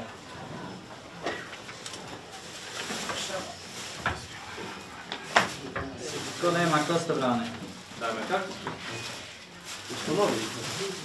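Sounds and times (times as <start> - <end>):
clothing and kit rustling: 0.0 - 11.0
low background voices: 0.0 - 11.0.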